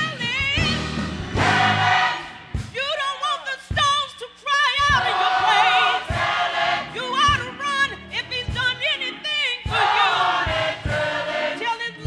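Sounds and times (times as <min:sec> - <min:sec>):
gospel choir singing: 0:00.2 - 0:03.1, 0:04.8 - 0:12.0.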